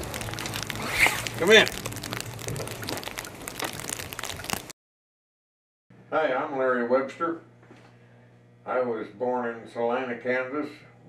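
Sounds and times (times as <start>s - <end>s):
crackling patter of wet snow: 0.0s - 4.8s.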